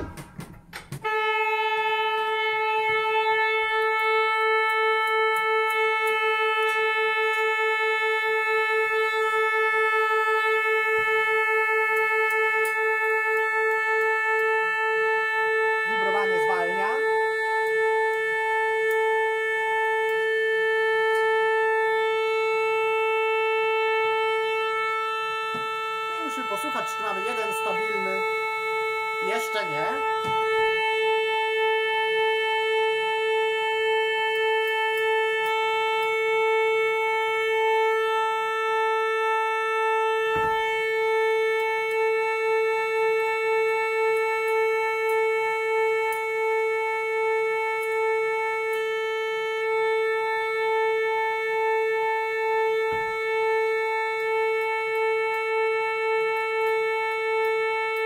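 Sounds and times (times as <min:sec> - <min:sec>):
pipe organ holding a note: 0:00.0 - 0:42.9.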